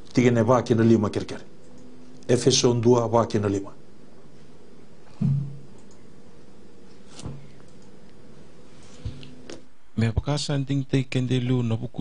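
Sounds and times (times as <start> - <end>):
background hiss: 0.0 - 12.0
faint hum: 0.0 - 12.0.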